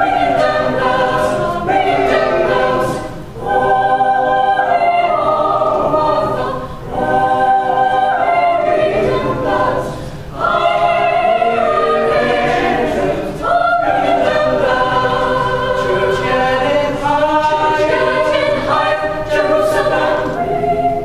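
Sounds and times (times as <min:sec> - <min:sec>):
choir singing a cappella: 0:00.0 - 0:21.0.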